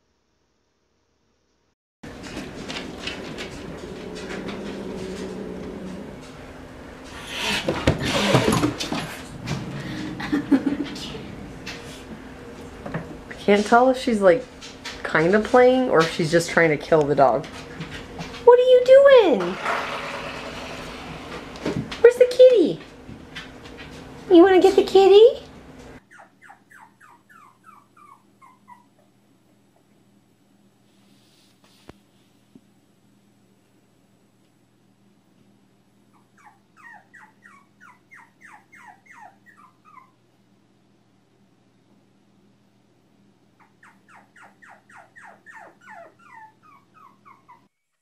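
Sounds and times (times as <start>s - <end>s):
low steady hum: 2.1s - 19.4s
young animal crying: 26.0s - 29.0s, 36.2s - 40.2s, 43.6s - 47.7s.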